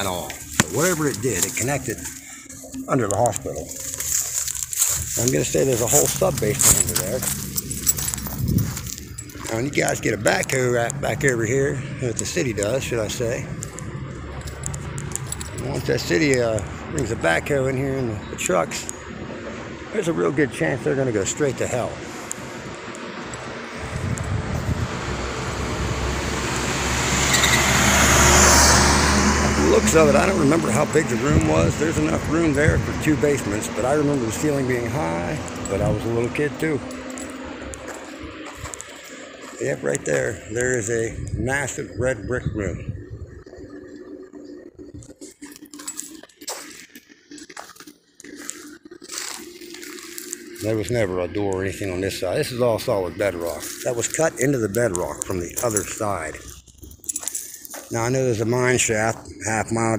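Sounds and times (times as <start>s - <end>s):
footsteps over loose stones: 0.0s - 16.6s, 33.1s - 40.2s, 44.0s - 51.0s, 52.9s - 59.9s
car driving past: 21.1s - 40.8s.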